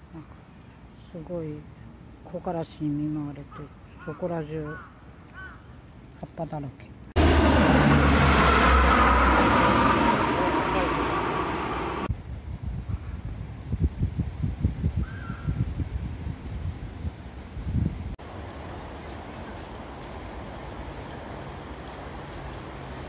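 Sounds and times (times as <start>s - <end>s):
short higher sound: 7.2s - 12.1s
wind buffeting microphone: 7.2s - 18.2s.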